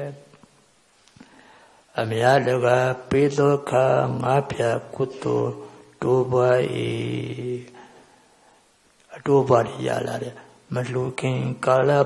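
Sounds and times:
man chanting into a microphone: 0:01.9 - 0:07.8, 0:09.1 - 0:12.0.

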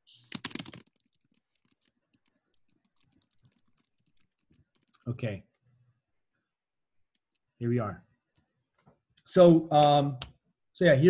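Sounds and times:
typing on computer keyboard: 0:00.2 - 0:05.1.

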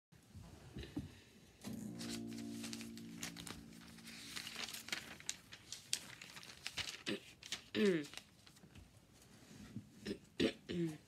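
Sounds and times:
acoustic guitar chord strummed: 0:01.6 - 0:05.3.

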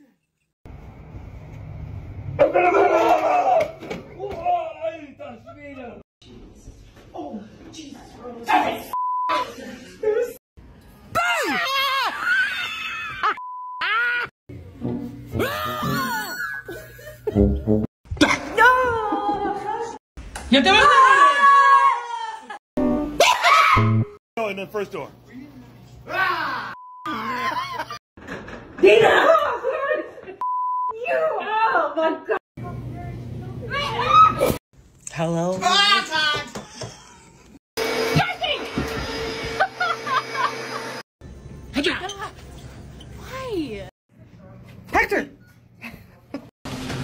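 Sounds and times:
person screaming: 0:15.4 - 0:16.4
censor bleeps: 0:30.4 - 0:31.0.

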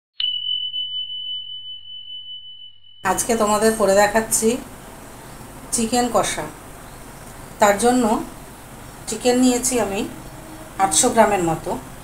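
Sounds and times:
high bell-like ding: 0:00.2 - 0:03.1.

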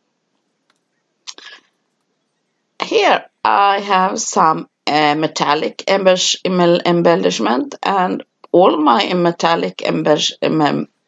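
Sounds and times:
woman speaking: 0:01.3 - 0:01.6, 0:02.8 - 0:11.0.

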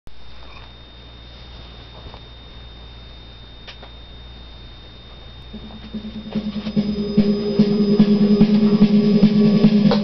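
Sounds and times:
high-pitched whine: 0:00.1 - 0:10.0
low hum: 0:00.6 - 0:10.0.

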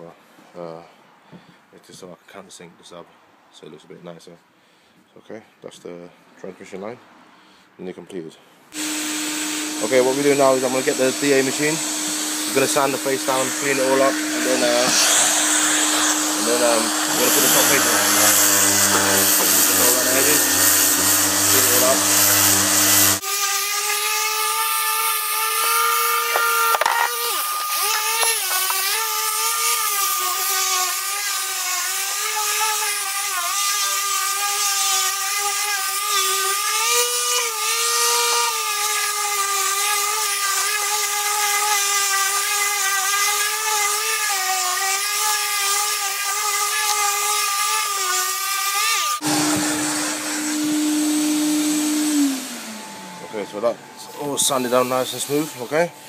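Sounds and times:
orbital sander whining: 0:08.8 - 0:56.0.

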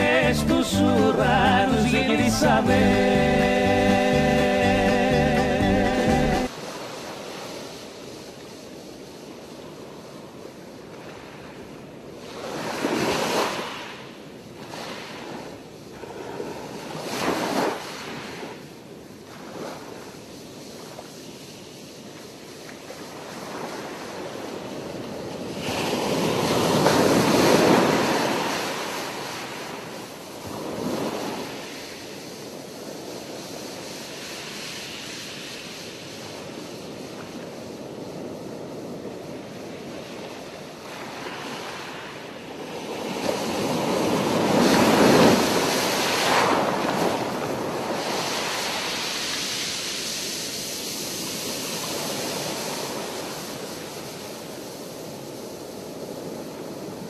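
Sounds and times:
waves breaking on beach: 0:06.4 - 0:57.0.

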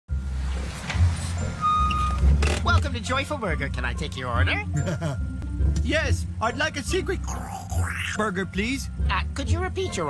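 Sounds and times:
short electronic beep: 0:01.6 - 0:02.2.

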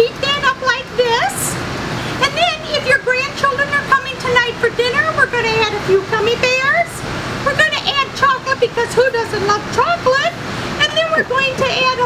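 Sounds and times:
woman talking: 0:00.0 - 0:01.6, 0:02.2 - 0:12.0.

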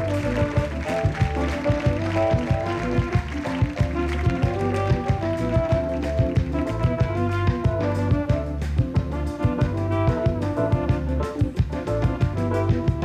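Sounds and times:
band playing upbeat tune: 0:00.0 - 0:13.0
bass line: 0:00.0 - 0:13.0
steady drum beat: 0:00.0 - 0:13.0.

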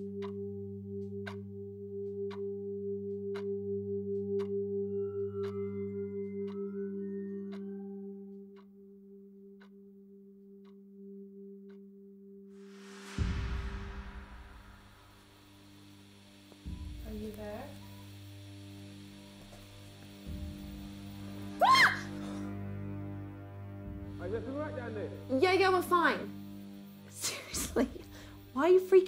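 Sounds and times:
sustained ringing drone: 0:00.0 - 0:29.0
sharp rising pitched sound: 0:12.6 - 0:17.2
deep booming hits: 0:13.1 - 0:15.8.

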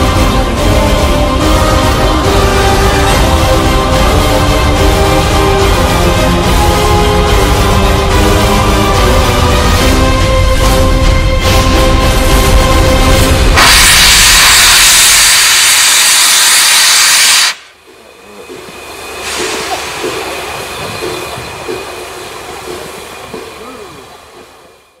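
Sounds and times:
steam locomotive venting steam: 0:11.5 - 0:25.0.

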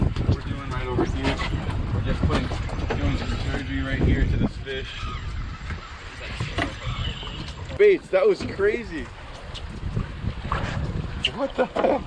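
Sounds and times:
water splashing against boat: 0:00.0 - 0:12.0
wind rumbling on microphone: 0:00.0 - 0:12.0.

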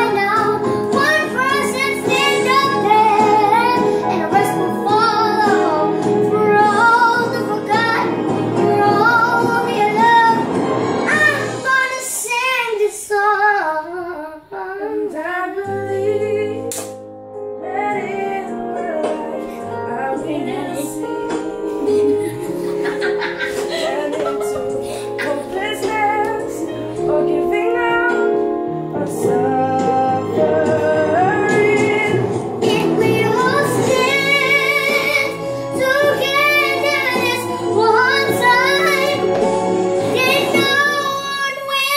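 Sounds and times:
young woman singing: 0:00.0 - 0:10.4, 0:11.1 - 0:41.9
instrumental accompaniment: 0:00.0 - 0:12.0, 0:15.6 - 0:41.9.

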